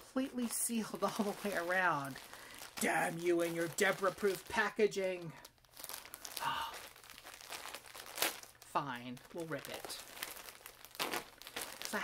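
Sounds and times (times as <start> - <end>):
packaging crinkling and ripping: 0.4 - 12.0.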